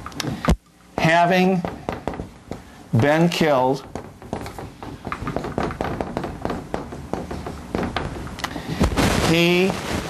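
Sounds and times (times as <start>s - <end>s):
writing taps and scratches on board: 3.8s - 8.6s.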